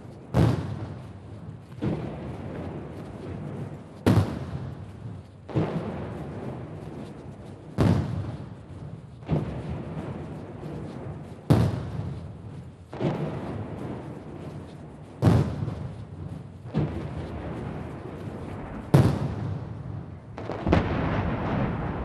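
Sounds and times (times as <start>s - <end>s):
cannon blasts with echo: 0.3s - 6.6s, 7.7s - 10.3s, 11.3s - 14.2s, 15.2s - 22.0s.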